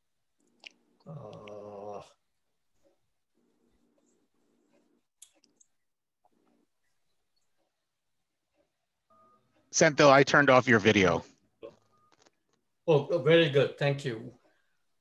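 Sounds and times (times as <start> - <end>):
person humming: 1.1 - 2.1.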